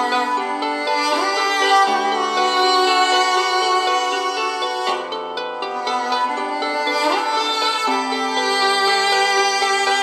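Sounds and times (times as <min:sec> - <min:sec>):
classical violin music on small radio: 0:00.0 - 0:10.0.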